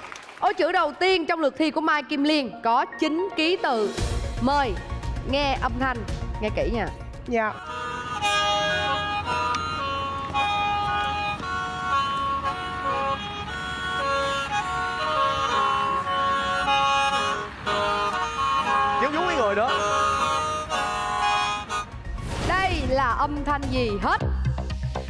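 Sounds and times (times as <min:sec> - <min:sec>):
bamboo mouth organ playing chords: 0:07.5 - 0:22.1.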